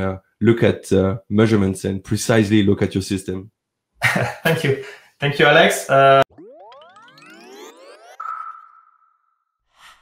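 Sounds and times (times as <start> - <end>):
bright electronic ping: 6.3 - 9.3.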